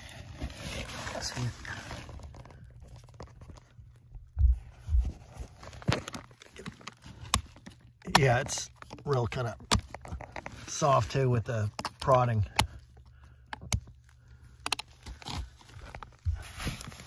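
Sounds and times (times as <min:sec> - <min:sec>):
scuffing and handling noise: 0:00.0 - 0:11.4, 0:14.8 - 0:17.0
dull low thumps: 0:04.1 - 0:05.4.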